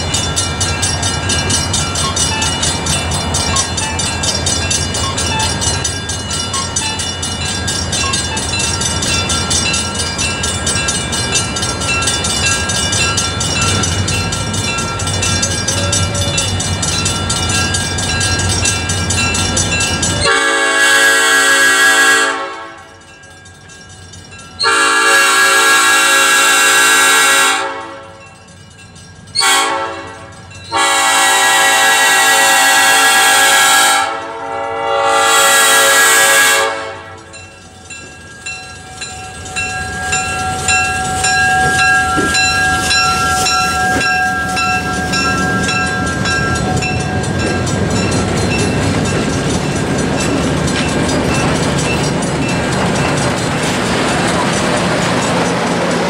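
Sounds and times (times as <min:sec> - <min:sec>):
crossing bell ringing: 0:00.0 - 0:56.0
locomotive engine and wheels passing: 0:00.0 - 0:56.0
locomotive air horn blasts: 0:20.2 - 0:22.9, 0:24.6 - 0:28.2, 0:29.4 - 0:37.3.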